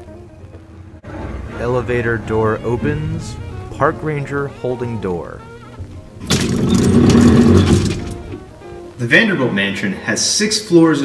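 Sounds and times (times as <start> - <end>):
lattice gate rattling open: 6.2 - 8.3.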